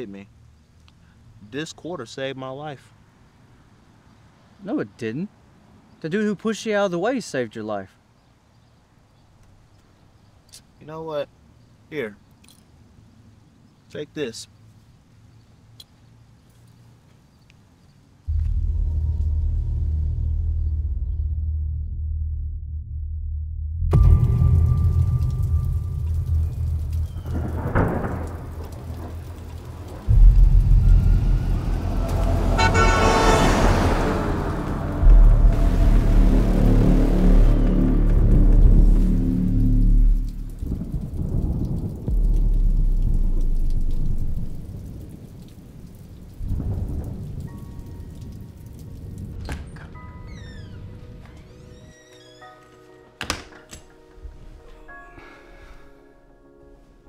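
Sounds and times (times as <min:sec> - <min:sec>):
film soundtrack music: 0:18.3 - 0:44.5, 0:46.5 - 0:57.0
deep rumbling swells: 0:18.3 - 0:44.9
rising whoosh: 0:29.8 - 0:40.8.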